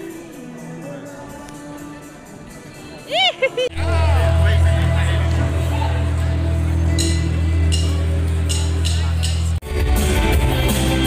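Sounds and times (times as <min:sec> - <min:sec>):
live rock band playing: 0:03.8 - 0:11.0.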